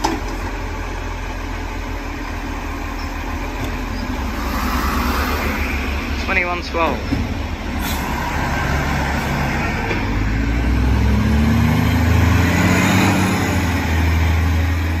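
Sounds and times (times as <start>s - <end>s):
garbage truck accelerating past: 3.3s - 6.2s, 7.2s - 15.0s.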